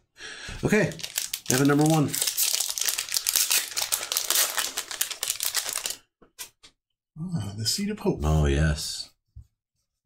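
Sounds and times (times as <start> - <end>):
foil wrapper tearing and crinkling: 0.9 - 6.0.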